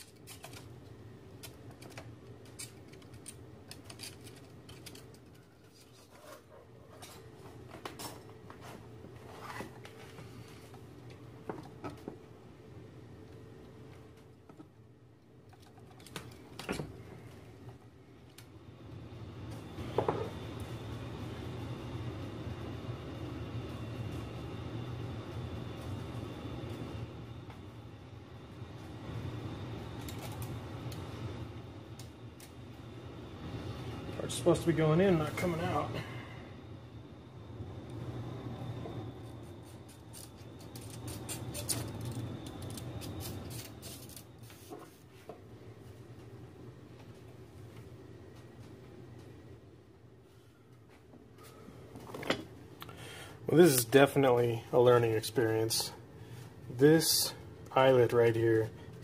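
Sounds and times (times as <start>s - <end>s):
furnace rumbling with high whine: 0.0s - 59.0s.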